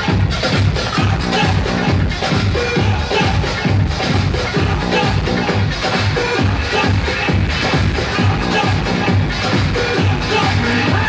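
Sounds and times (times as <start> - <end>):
bass drum beat: 0.0 - 11.0
electronic dance music: 0.0 - 11.0.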